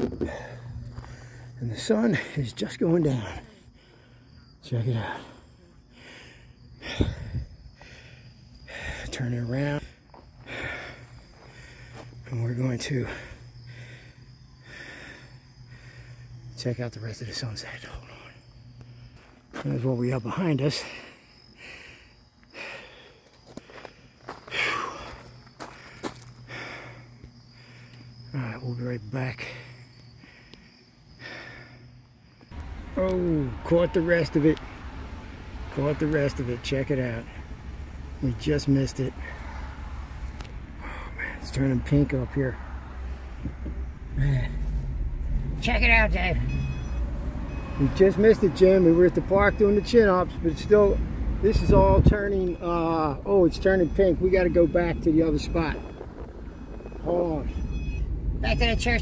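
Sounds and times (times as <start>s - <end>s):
car rumbling on road: 0.0s - 59.0s
high-pitched cricket trill: 0.0s - 59.0s
man breathing hard: 0.1s - 1.6s, 3.4s - 9.2s, 9.8s - 12.3s, 13.0s - 16.5s, 20.8s - 28.3s, 29.5s - 32.4s.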